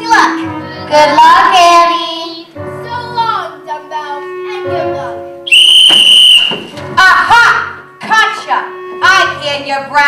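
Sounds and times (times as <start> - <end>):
shrill whistle blast: 5.5 - 6.7.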